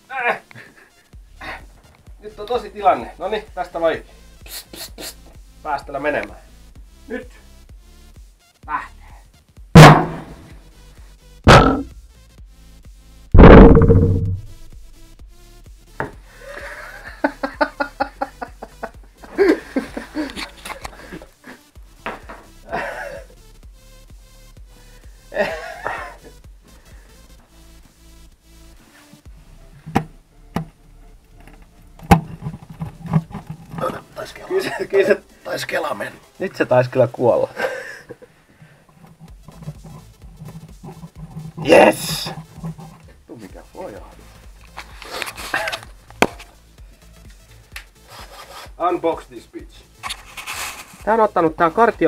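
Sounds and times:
loud subwoofer blasts: 11.5s - 11.9s, 13.3s - 14.8s
speaker driver cracking and crackling: 31.4s - 34.1s.

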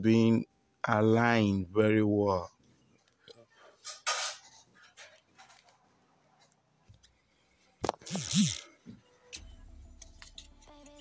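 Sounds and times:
breathy vocal hums: 8.0s - 8.8s.

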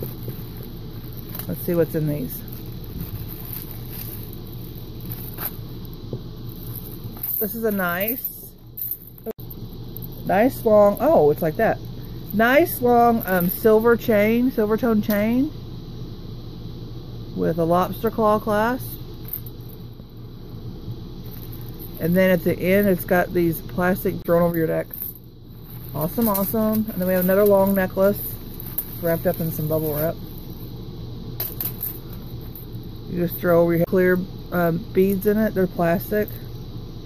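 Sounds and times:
plastic bags rustling and crinkling: 0.0s - 11.2s, 21.2s - 22.0s, 24.7s - 30.7s
low background hum: 0.0s - 37.0s.

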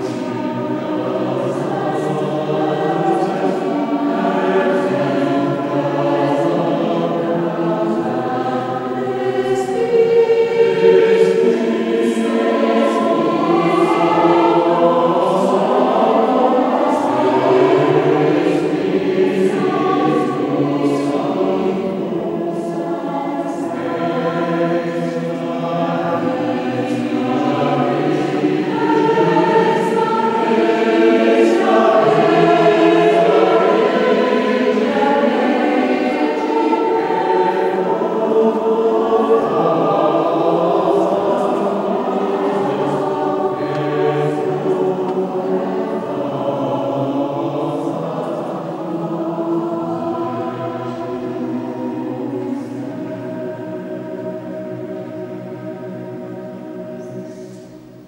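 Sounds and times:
mixed choir singing: 0.0s - 58.0s.

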